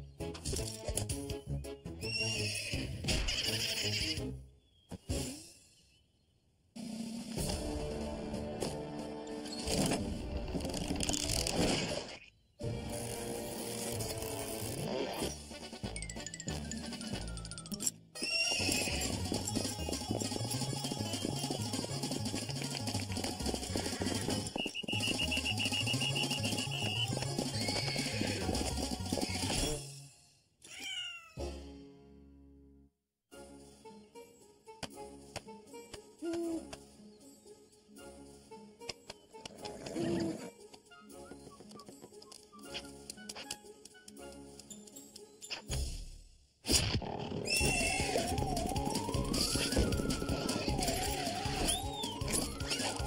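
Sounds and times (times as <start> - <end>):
cartoon horse neighing: 2.1 - 4.2, 18.2 - 19.2, 27.5 - 28.6, 47.4 - 48.4
cartoon music with stepping bass: 12.6 - 17.9, 18.6 - 29.8, 47.5 - 53.0.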